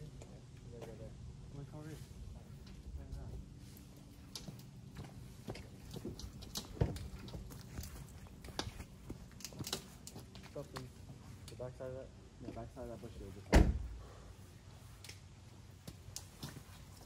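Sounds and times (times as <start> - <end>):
footsteps: 1.8 - 11.5, 15.8 - 17.0.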